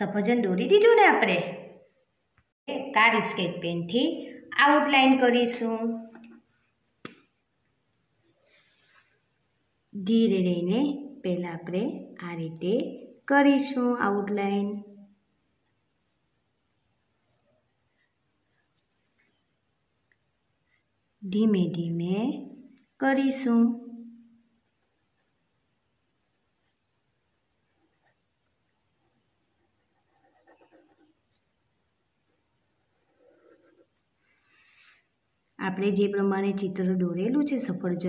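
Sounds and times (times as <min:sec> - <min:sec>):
pen scratching on paper: 0:17.0 - 0:19.6, 0:24.6 - 0:25.4, 0:27.6 - 0:31.5, 0:32.8 - 0:34.4.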